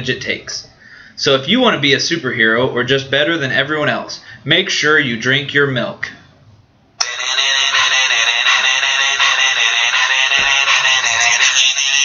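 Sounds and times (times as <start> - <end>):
phone music ringtone: 7.0 - 12.0.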